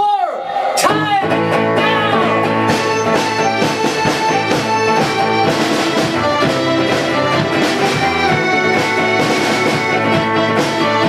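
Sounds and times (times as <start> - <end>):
bass: 0.8 - 11.0
electric guitar: 0.9 - 11.0
steady drum beat: 1.2 - 11.0.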